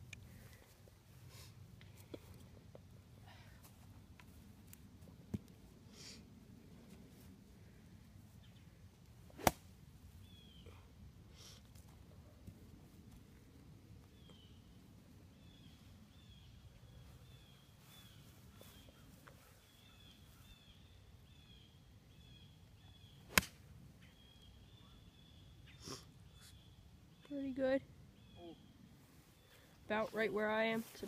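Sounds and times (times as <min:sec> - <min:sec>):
golf club striking ball: 0:09.4 - 0:09.7, 0:23.3 - 0:23.6.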